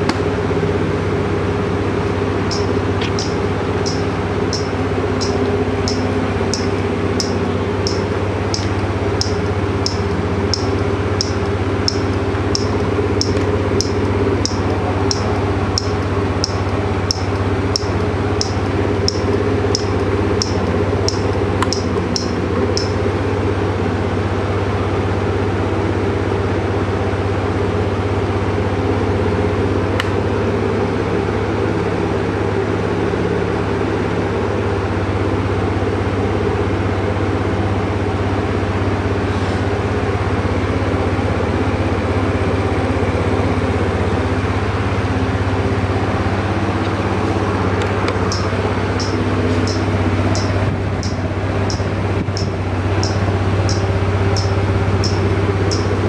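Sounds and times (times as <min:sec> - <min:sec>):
scooter engine idling: 0:00.0 - 0:56.0
light ticks: 0:02.5 - 0:23.0, 0:47.8 - 0:56.0.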